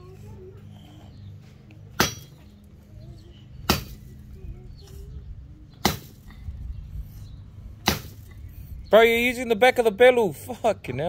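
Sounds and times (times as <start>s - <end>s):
machete knocking on tree trunk: 2.0s - 2.4s.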